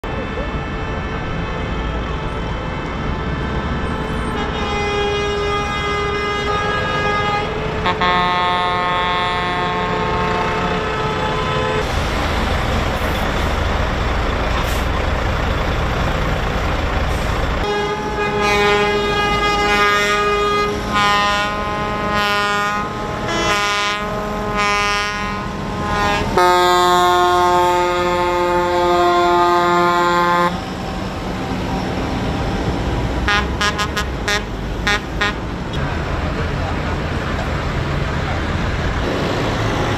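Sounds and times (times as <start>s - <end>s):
tractor horns honking: 0.0s - 11.9s, 17.5s - 32.3s, 32.9s - 35.8s
diesel tractor engines idling: 0.0s - 39.9s.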